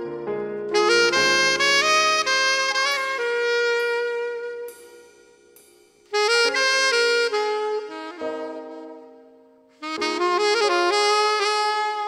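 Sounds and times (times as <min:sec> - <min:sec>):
saxophone melody: 0:00.0 - 0:12.0.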